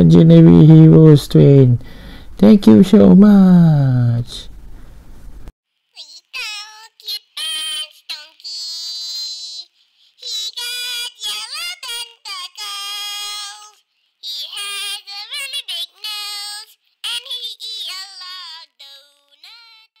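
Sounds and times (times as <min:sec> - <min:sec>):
high-pitched singing voice: 0:05.9 - 0:20.0.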